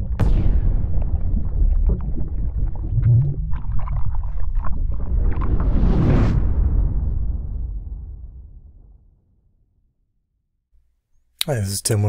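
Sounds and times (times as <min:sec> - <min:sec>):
bubbling and splashing blips: 0:00.0 - 0:05.8
deep steady rumble: 0:00.0 - 0:09.1.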